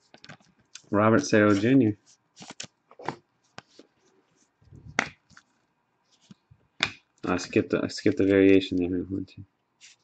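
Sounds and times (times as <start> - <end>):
cards swishing over cards: 1.4 - 3.9.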